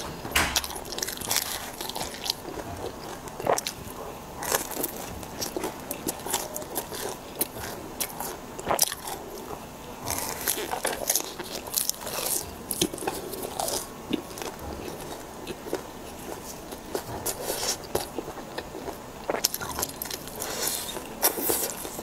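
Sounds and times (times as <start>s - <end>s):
person chewing: 0.0s - 22.0s.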